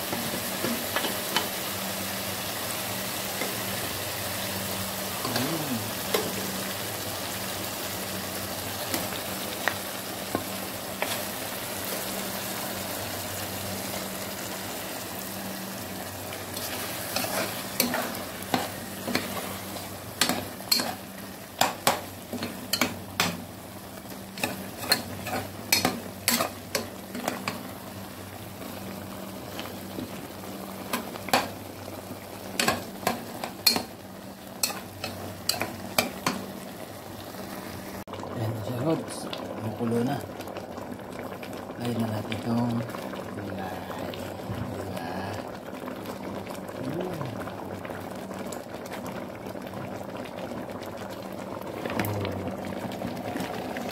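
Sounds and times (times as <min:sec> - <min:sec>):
food sizzling in a pot: 0:00.0 - 0:53.9.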